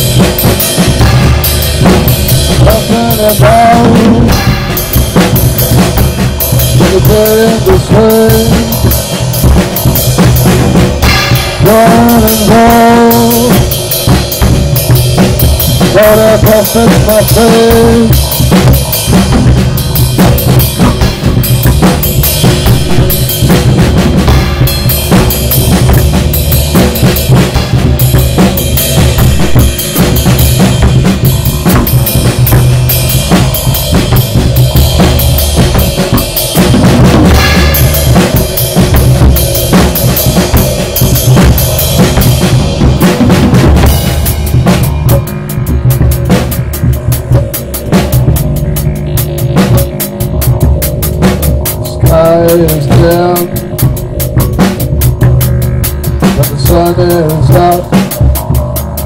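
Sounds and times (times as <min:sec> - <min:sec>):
drum kit beat: 0:00.0 - 0:59.0
slap bass line: 0:00.0 - 0:59.0
sustained synthesizer: 0:00.0 - 0:59.0.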